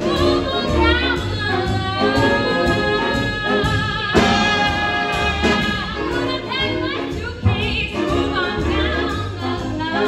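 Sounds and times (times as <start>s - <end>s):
jazz big band playing: 0.0s - 10.0s
women singing: 0.0s - 10.0s.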